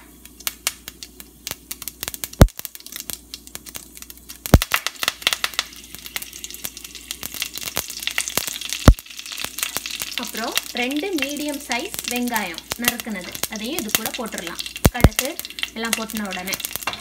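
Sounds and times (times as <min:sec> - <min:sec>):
seeds popping in hot oil: 0:00.0 - 0:17.0
leaves crackling as they fry: 0:00.2 - 0:17.0.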